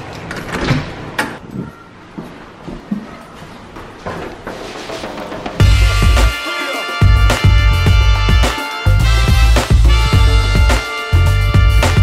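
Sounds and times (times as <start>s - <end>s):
music with heavy bass beat: 5.6s - 12.0s.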